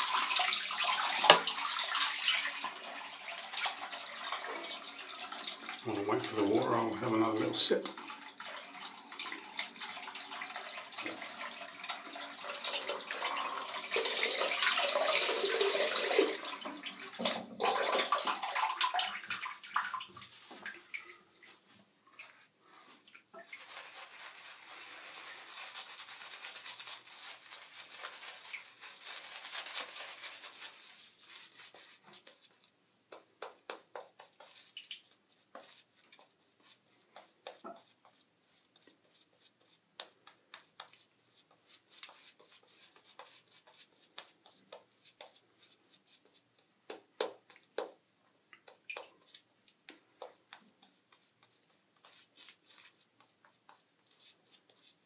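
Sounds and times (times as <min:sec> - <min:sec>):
water running from a tap: 0:00.0 - 0:21.2
shaving brush swishing lather: 0:05.9 - 0:08.1, 0:23.4 - 0:47.9, 0:48.7 - 0:55.0.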